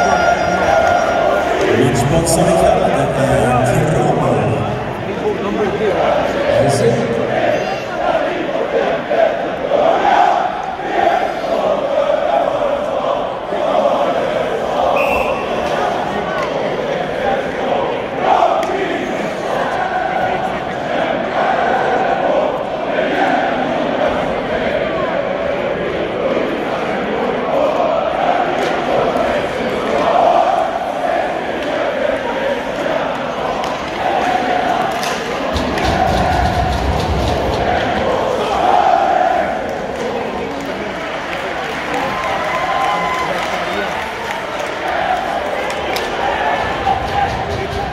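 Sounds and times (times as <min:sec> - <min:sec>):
crowd singing together: 0:00.0 - 0:42.0, 0:43.8 - 0:47.9.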